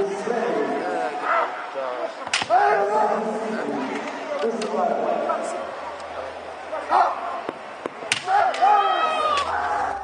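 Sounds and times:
bamboo swords clacking: 7.8 - 9.8.

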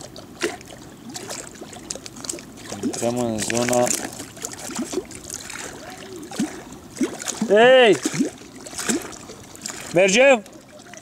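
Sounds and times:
waves lapping against boat: 0.0 - 11.0.

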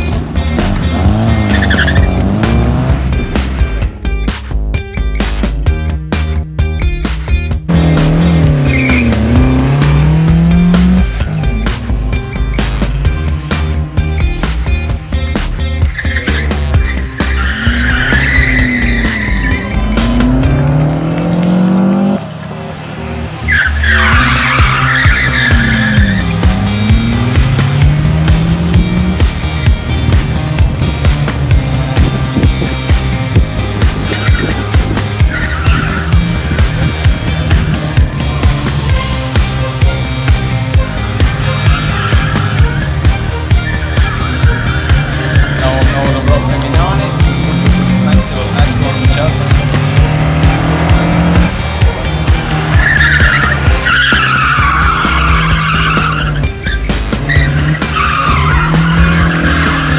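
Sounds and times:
car engine revving: 0.0 - 4.0, 7.6 - 59.9
music with steady beat: 0.0 - 21.9, 24.2 - 59.9
tyres squealing: 0.4 - 2.6, 7.7 - 13.0, 15.8 - 20.9, 23.4 - 29.2, 33.8 - 37.7, 40.2 - 59.9.

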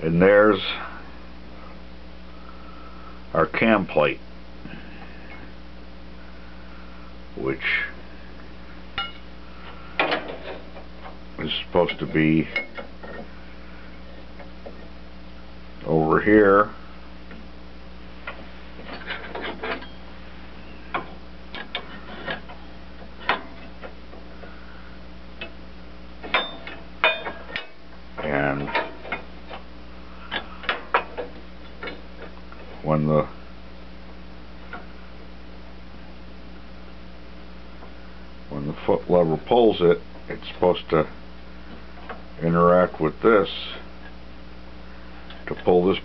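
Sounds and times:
low hum: 0.0 - 46.0.

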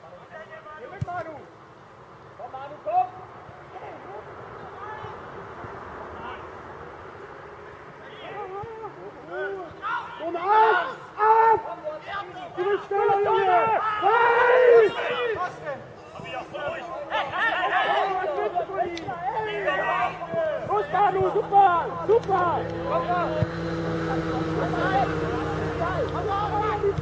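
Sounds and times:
outdoor chatter: 0.0 - 27.0
players and spectators shouting: 8.0 - 27.0.

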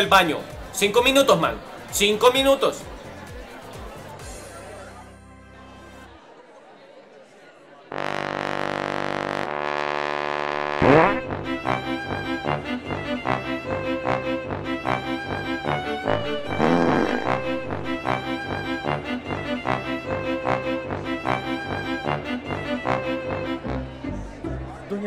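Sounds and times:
long held chords: 10.5 - 23.8
bouncy tune with bass beat: 10.8 - 23.7
quick upward swoop: 16.0 - 18.6.

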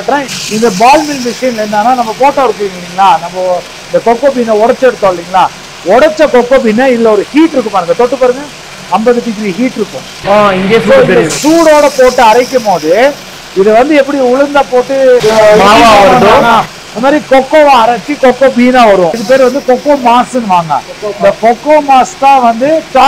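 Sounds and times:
man talking: 0.0 - 23.0.

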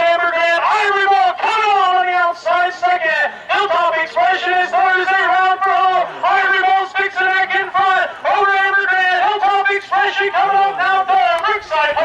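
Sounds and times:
man calling a race: 0.0 - 12.0.

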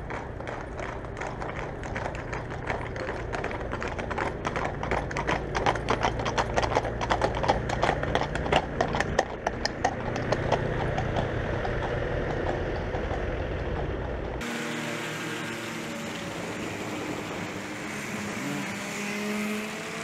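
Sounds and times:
hooves clip-clopping on asphalt: 0.0 - 14.5
low engine hum: 0.0 - 19.6.

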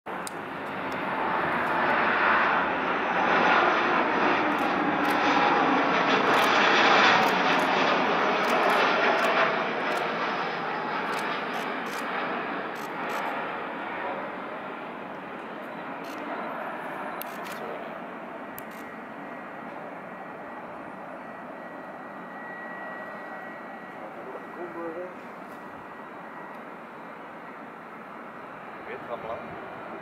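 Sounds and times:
jet airliner passing: 0.1 - 30.0.

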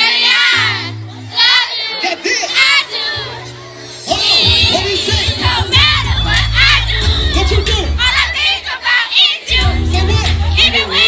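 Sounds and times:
crowd shouting and singing along: 0.0 - 11.0
party music with heavy bass: 0.0 - 11.0.

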